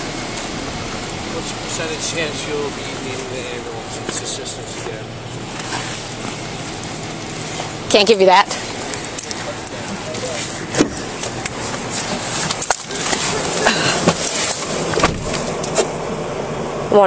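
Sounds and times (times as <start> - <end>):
steady loud noise: 0.0 - 17.0
car door opening: 8.4 - 16.1
camera rustling: 8.5 - 15.9.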